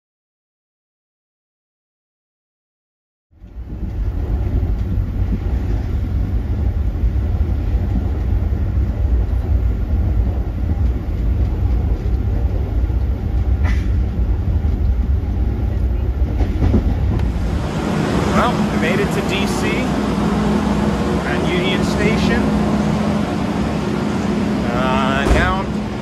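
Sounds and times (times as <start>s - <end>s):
train wheels rumbling on track: 3.4s - 26.0s.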